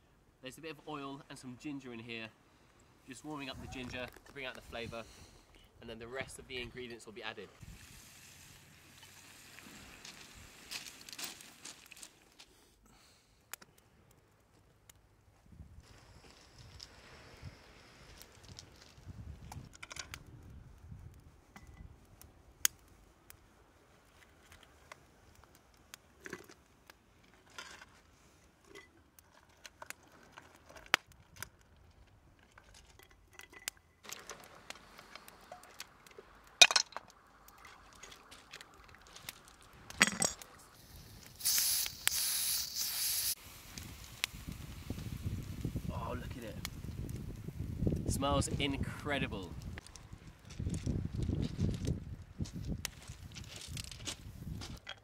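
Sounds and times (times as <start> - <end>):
wood fire crackling and popping: 7.6 - 15.1, 17.7 - 54.8
loud hiss: 40.8 - 46.3.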